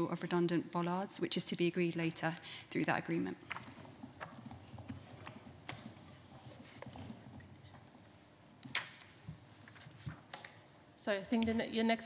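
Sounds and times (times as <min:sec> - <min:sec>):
laptop keyboard typing: 0:03.4 - 0:09.0.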